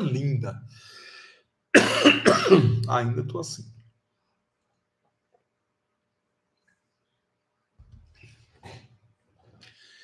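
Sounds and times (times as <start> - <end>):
man coughing: 1.7 - 2.9.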